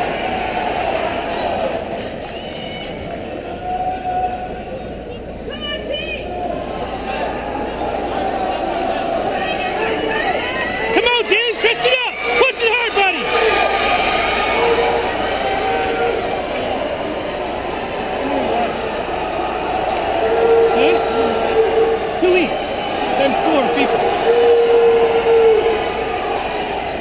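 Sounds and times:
crowd din with cheers: 0.0s - 27.0s
long drawn-out calls: 6.3s - 27.0s.

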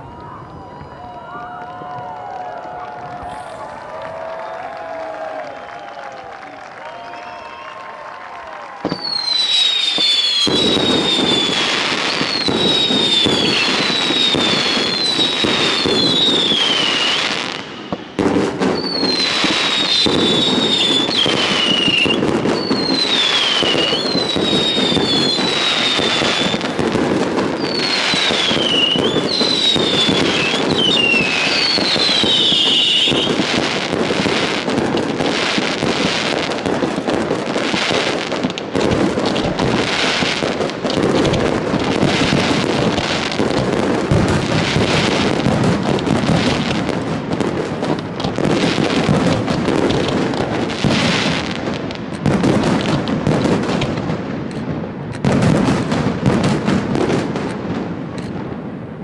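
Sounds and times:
firework whistles falling in pitch: 0.0s - 2.2s, 5.2s - 6.2s, 6.9s - 7.9s, 8.8s - 36.7s
fireworks crackling and banging: 0.0s - 59.0s.

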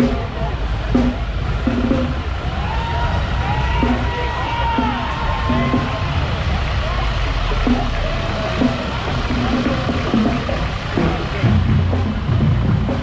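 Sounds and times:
background music: 0.0s - 13.0s
crowd chatter: 0.0s - 13.0s
tractor engine running: 0.0s - 13.0s.

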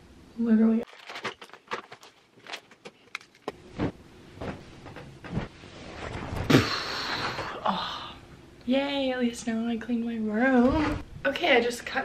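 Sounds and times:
objects clicking and knocking: 0.8s - 3.6s.

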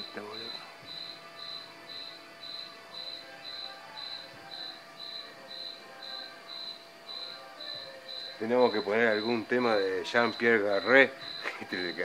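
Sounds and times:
faint music: 0.0s - 12.0s
cricket chirping: 0.3s - 12.0s.

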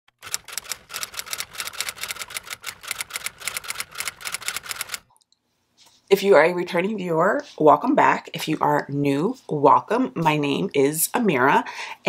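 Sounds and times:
sharp typewriter-like clicks: 0.2s - 5.1s.

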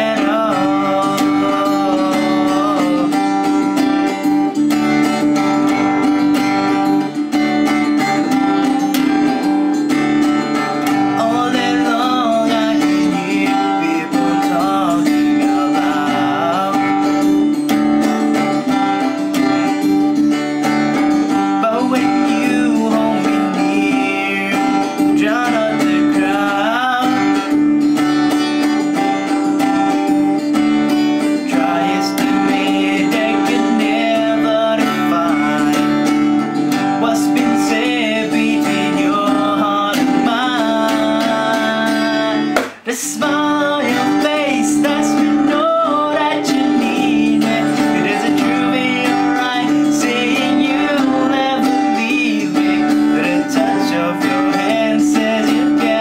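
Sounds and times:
man singing a slow ballad: 0.0s - 3.7s, 10.8s - 17.5s, 21.5s - 27.6s, 31.4s - 56.0s
acoustic guitar strumming: 0.0s - 56.0s.

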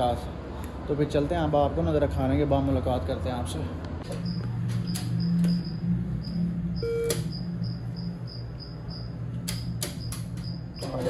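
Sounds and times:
high repeating chirp: 4.2s - 9.2s
cash machine electronic beep: 4.2s - 11.0s
sharp clicks: 9.3s - 11.0s.

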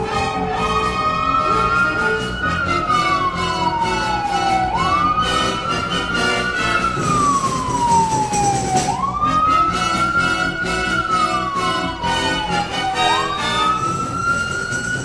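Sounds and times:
background music: 0.0s - 15.0s
emergency siren wailing: 0.0s - 15.0s.

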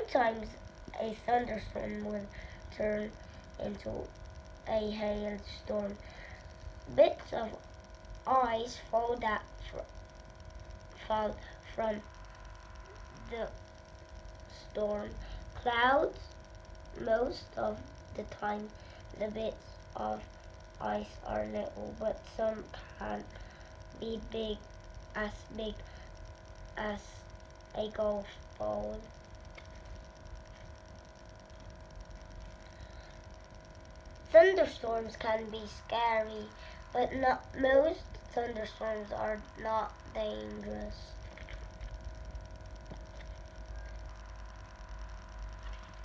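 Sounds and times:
child reading aloud: 0.0s - 7.6s, 8.2s - 9.9s, 10.9s - 12.1s, 13.1s - 13.6s, 14.5s - 16.3s, 16.9s - 26.1s, 26.8s - 29.1s, 34.3s - 41.2s
faint background hum: 0.0s - 46.0s.

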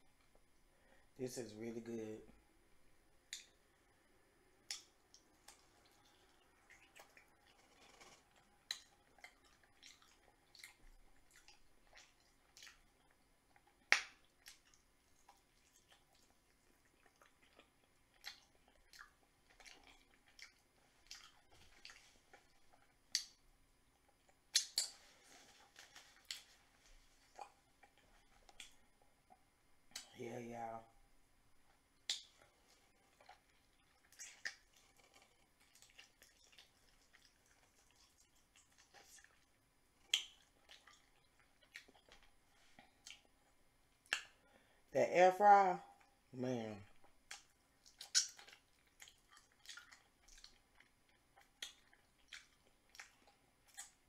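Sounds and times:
person chewing: 4.5s - 30.2s, 31.6s - 44.8s, 46.9s - 54.0s
wet lip smacks: 4.6s - 23.4s, 24.5s - 28.8s, 29.9s - 30.2s, 32.0s - 42.3s, 42.9s - 43.3s, 44.0s - 44.4s, 47.0s - 54.0s
mouth clicks: 24.5s - 25.1s.

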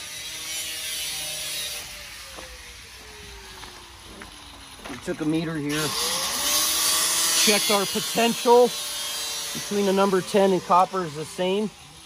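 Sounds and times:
engine running: 2.3s - 12.0s.

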